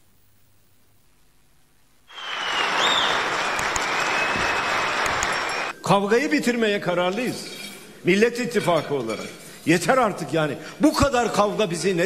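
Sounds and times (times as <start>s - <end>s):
audience applauding: 2.1s - 5.8s.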